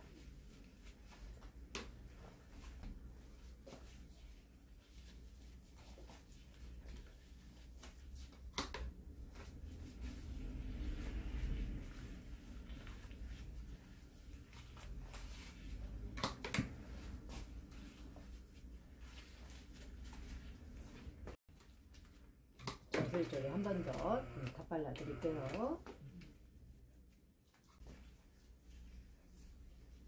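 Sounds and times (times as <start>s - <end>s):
brush strokes through wet hair: 0.0s - 16.2s, 27.6s - 30.0s.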